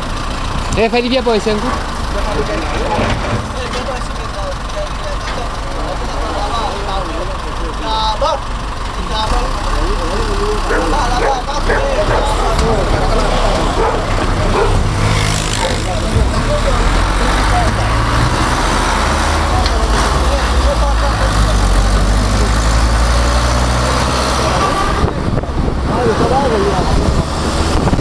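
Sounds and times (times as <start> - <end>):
truck engine idling: 0.0 - 28.0
people calling out: 10.6 - 15.9.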